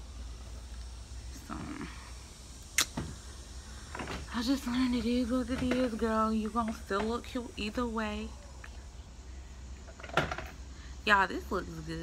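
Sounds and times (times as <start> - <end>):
low steady hum: 0.0 - 12.0
sharp click: 2.7 - 3.0.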